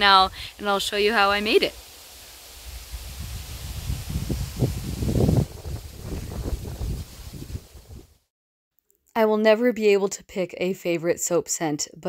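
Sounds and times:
wind buffeting microphone: 2.6 - 8.2.

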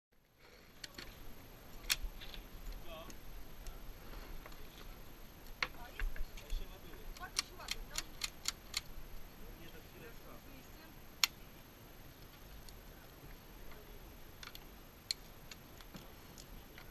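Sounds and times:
faint voices: 0.4 - 8.3, 9.3 - 14.7.

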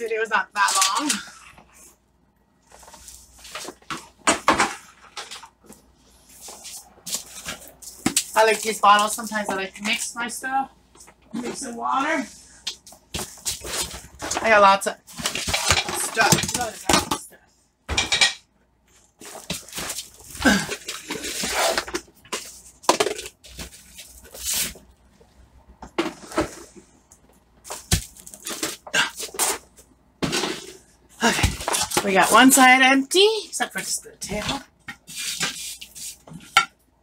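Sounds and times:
plastic plant pots clattering: 13.2 - 17.2
containers clattering and knocking: 15.1 - 17.3, 19.2 - 24.0, 30.2 - 32.6.

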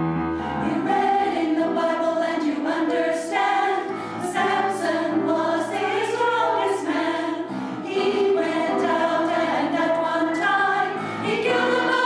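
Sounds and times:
women's choir singing a hymn: 0.4 - 12.0.

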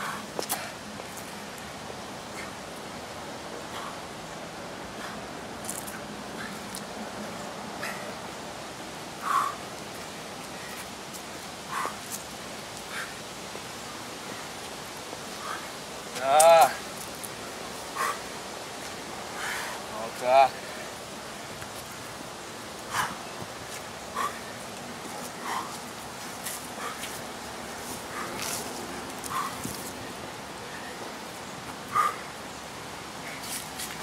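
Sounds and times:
outdoor background hiss: 0.0 - 34.0.

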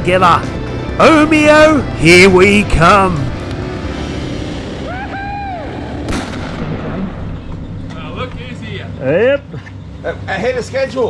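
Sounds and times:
motorcycle engine drone: 0.5 - 11.0.

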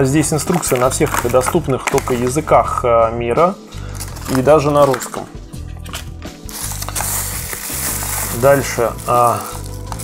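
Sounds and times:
bubble wrap crinkling: 0.2 - 2.4, 3.8 - 5.2, 5.8 - 10.0.

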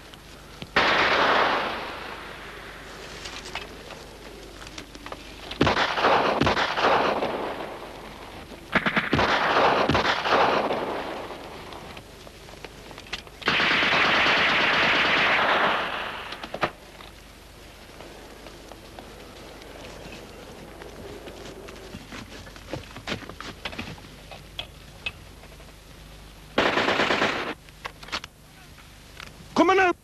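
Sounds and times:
single gunshots: 0.8 - 2.2, 5.6 - 7.8, 8.7 - 11.3, 13.4 - 16.8, 26.6 - 27.6
machine-gun fire: 0.8 - 2.6, 5.6 - 7.9, 8.7 - 11.6, 13.4 - 16.8, 26.6 - 27.6.

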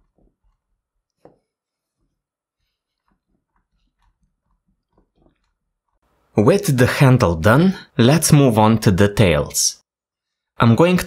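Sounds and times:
soft ticks and rubbing: 0.0 - 6.1.

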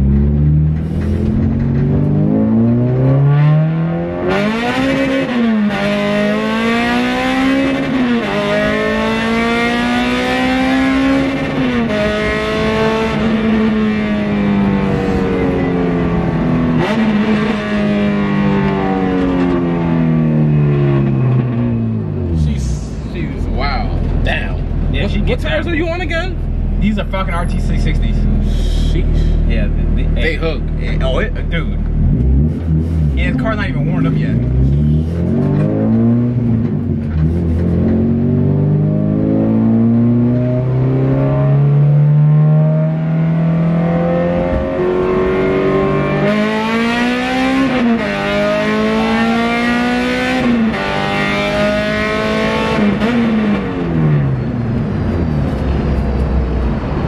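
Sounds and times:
car engine accelerating through upshifts: 0.0 - 23.4, 27.6 - 57.0.

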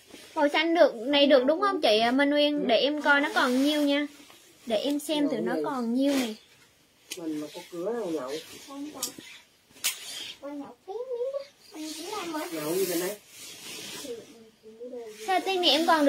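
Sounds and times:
fabric rustling: 0.0 - 16.0.

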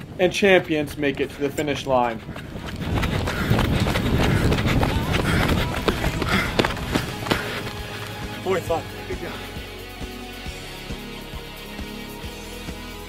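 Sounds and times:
footsteps running on a track: 0.0 - 8.1
steady rumbling noise: 0.0 - 8.4.

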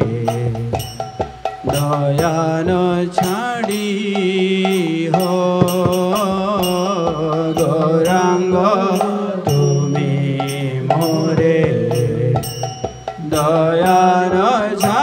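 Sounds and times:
hand drum strokes: 0.0 - 15.0
man singing devotional song: 0.0 - 15.0.

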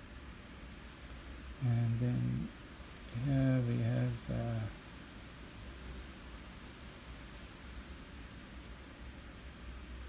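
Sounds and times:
low hum and hiss: 0.0 - 10.0
paintbrush scratching on paper: 8.4 - 10.0.

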